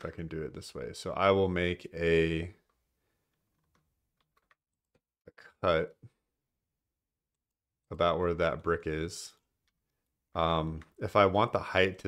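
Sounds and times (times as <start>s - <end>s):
computer keyboard and mouse clicks: 3.5s - 4.6s.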